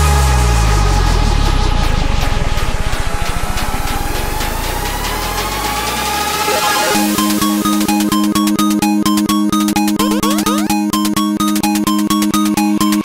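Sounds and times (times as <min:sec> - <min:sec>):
rising synth tone: 0:06.1 - 0:07.6, 0:10.0 - 0:10.8.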